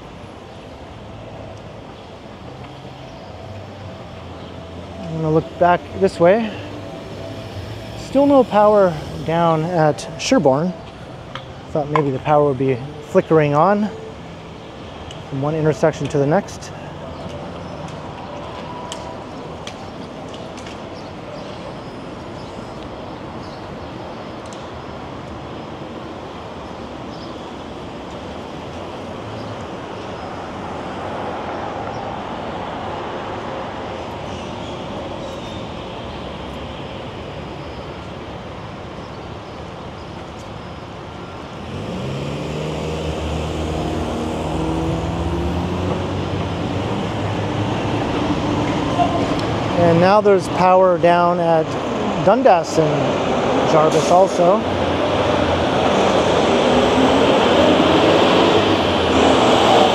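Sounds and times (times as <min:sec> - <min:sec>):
hum of cars passing: 0:00.0 - 0:59.9
vehicle engine accelerating: 0:41.6 - 0:49.8.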